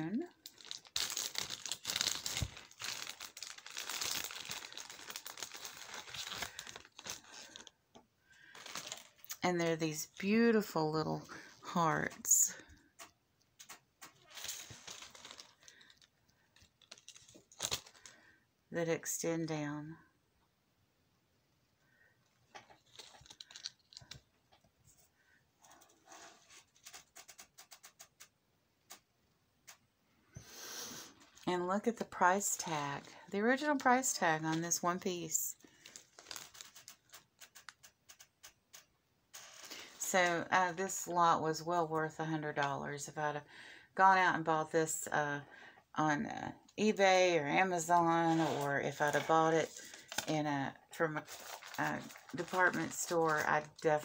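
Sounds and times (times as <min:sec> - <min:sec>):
packaging crinkling and rustling: 0:00.3 - 0:07.8, 0:08.4 - 0:09.4, 0:13.0 - 0:18.2, 0:22.5 - 0:25.0, 0:31.2 - 0:40.4, 0:48.0 - 0:54.0.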